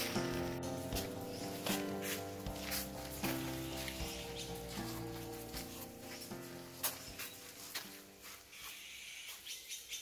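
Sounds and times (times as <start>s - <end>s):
faint birds chirping: 0.4s - 10.0s.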